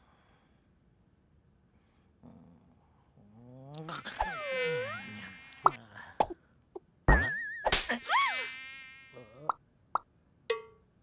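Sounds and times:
cartoon mosquito whine: 3.8 - 5.8, 7.2 - 9.5.

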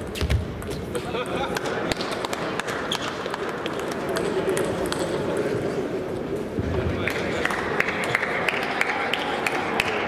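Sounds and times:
table tennis balls clicking: 0.2 - 5.7
murmur of voices: 0.7 - 10.0.

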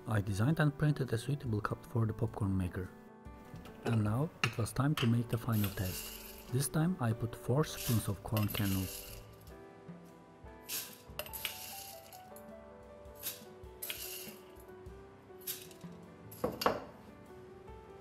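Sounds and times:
soft background music: 0.0 - 18.0
popcorn kernels rattling: 5.4 - 6.6, 7.7 - 9.4, 10.7 - 12.3, 13.2 - 14.6, 15.4 - 15.8.

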